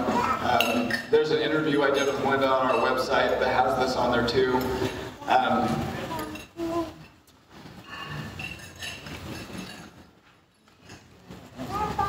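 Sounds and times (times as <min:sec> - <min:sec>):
faint hall room noise: 0:00.0 - 0:12.0
man speaking into microphone: 0:00.4 - 0:06.0.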